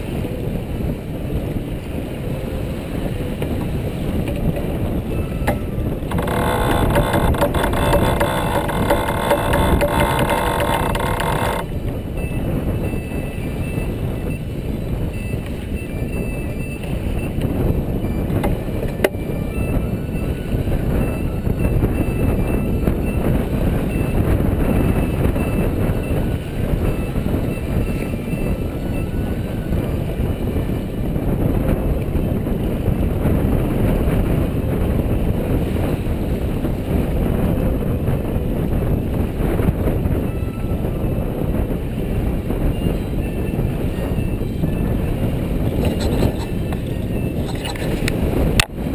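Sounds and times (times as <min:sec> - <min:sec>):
water rushing along hull: 0:00.0 - 0:48.9
wind buffeting microphone: 0:00.0 - 0:48.9
steady multi-pitch tone: 0:06.1 - 0:11.7.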